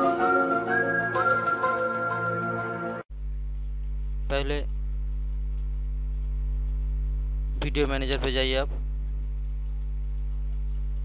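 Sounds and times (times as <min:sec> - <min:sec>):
mains hum: 0:03.1 - 0:11.0.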